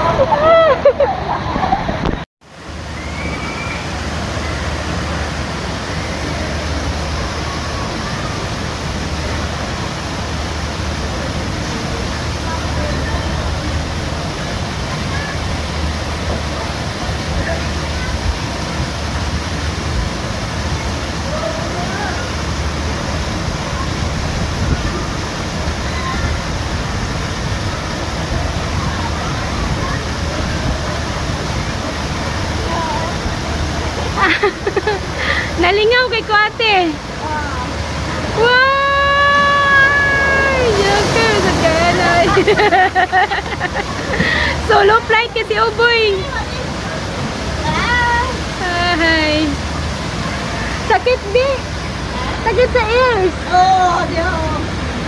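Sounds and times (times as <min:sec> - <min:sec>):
low steady rumble: 0:00.0 - 0:55.0
faint voices: 0:04.2 - 0:55.0.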